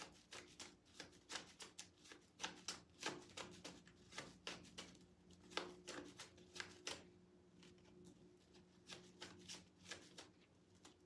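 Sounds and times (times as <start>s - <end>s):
cards being shuffled: 0.0s - 7.9s, 8.6s - 11.0s
faint steady hum: 0.0s - 11.0s.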